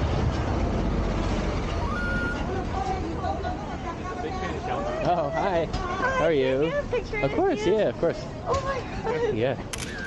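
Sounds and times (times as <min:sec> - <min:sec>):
vehicle engine rumbling: 0:00.0 - 0:04.8.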